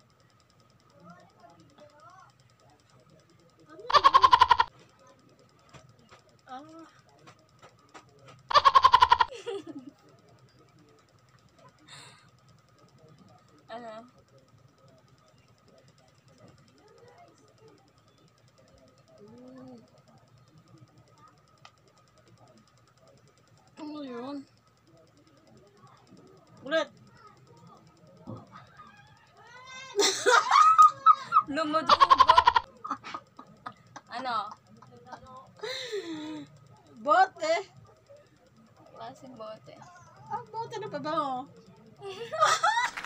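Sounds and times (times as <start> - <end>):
high-pitched laughter: 3.9 - 4.7, 8.5 - 9.8, 30.0 - 33.2.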